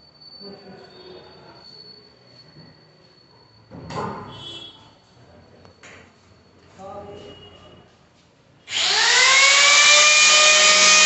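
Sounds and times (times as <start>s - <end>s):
power tool motor whine: 8.7s - 11.0s.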